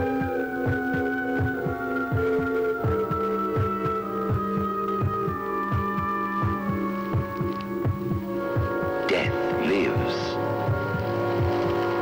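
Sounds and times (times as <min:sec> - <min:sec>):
heartbeat low thumps: 0:00.0 - 0:12.0.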